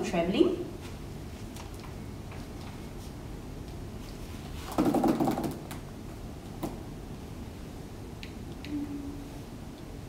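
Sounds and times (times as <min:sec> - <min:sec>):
plastic canopy clicks and rattles: 0:04.6 - 0:05.8.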